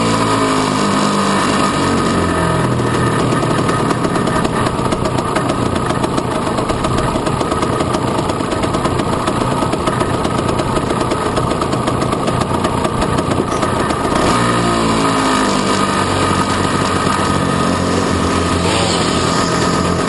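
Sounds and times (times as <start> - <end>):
small engine running at low revs: 0.0 - 20.0.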